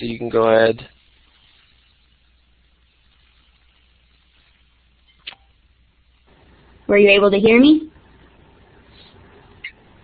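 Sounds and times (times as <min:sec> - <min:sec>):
faint low hum and hiss: 0:00.0 - 0:10.0.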